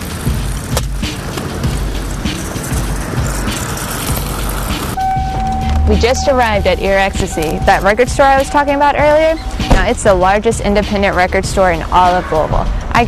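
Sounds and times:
skate wheels rolling on concrete: 0.0s - 5.0s
background music: 0.0s - 13.0s.

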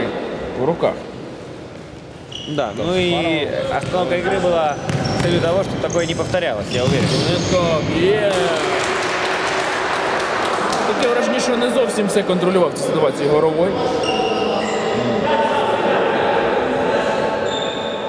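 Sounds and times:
echoing hall noise: 0.0s - 18.0s
ball kicked and bouncing on court: 4.8s - 5.4s.

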